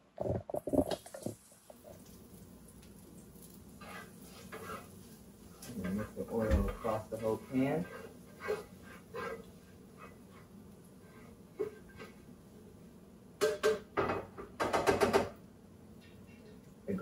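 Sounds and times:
garlic frying in oil: 0:00.7 - 0:12.8
spatula scraping a skillet: 0:03.1 - 0:12.4.

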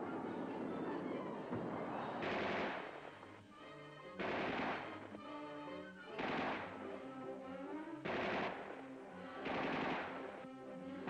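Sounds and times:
background music with held notes: 0:00.0 - 0:11.0
rifle fire bursts: 0:02.2 - 0:03.2, 0:04.2 - 0:05.1, 0:06.1 - 0:07.0, 0:08.0 - 0:10.4.

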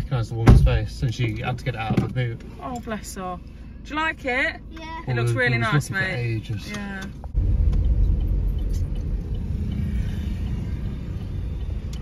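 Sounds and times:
car cabin rumble: 0:00.0 - 0:04.6, 0:05.2 - 0:12.0.

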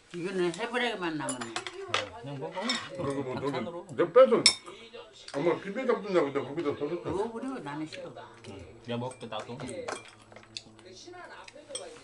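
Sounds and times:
chopsticks clinking on dishes: 0:01.2 - 0:02.0, 0:09.0 - 0:12.0.

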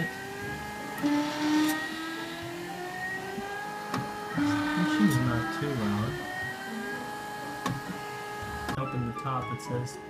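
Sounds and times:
stepper motors whining: 0:00.0 - 0:08.8.

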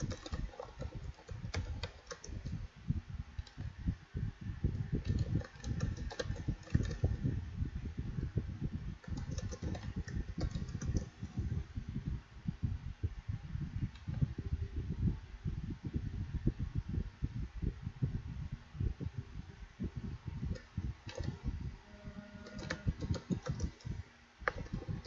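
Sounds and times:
computer keyboard typing: 0:00.0 - 0:02.6, 0:05.0 - 0:07.2, 0:09.0 - 0:11.2, 0:20.5 - 0:21.4, 0:22.4 - 0:25.0.

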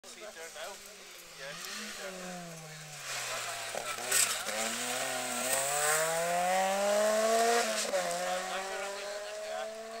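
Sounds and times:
rally car accelerating past: 0:01.5 - 0:10.0.

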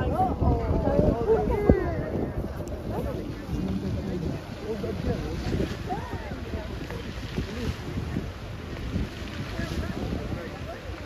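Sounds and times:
fountain jets rushing: 0:00.0 - 0:11.0
people chattering: 0:00.0 - 0:11.0
wind rumbling on microphone: 0:00.0 - 0:11.0.

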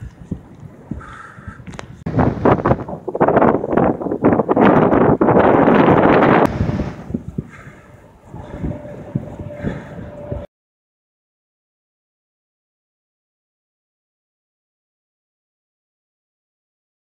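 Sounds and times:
strong wind buffeting microphone: 0:00.0 - 0:10.5.

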